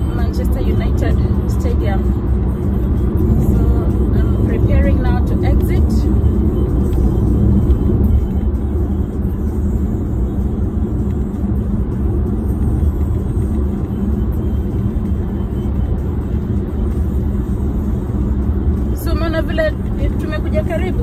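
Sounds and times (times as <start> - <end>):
car engine and tyres rumbling: 0.0 - 21.0.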